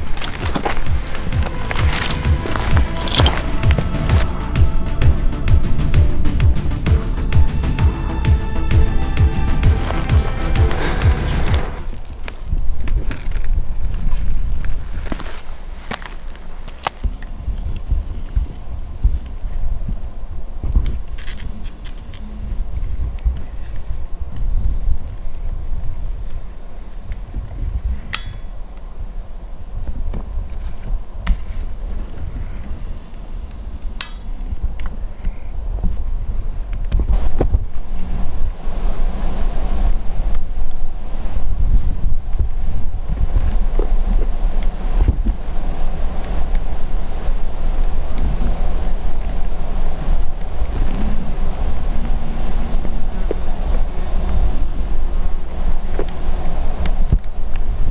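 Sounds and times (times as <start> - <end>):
wind buffeting microphone: 0.0 - 57.9.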